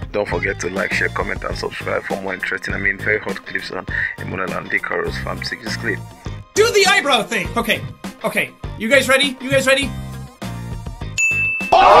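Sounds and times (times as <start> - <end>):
background music: 0.0 - 12.0
bright electronic ding: 11.2 - 12.0.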